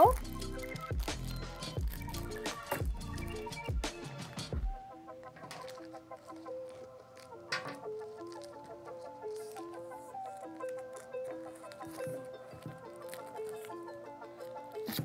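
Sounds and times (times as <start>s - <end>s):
light instrumental melody: 0.0s - 15.0s.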